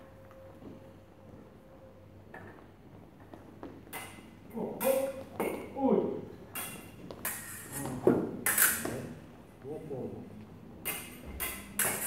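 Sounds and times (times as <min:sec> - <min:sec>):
sabre blades clashing: 0:10.8 - 0:12.0.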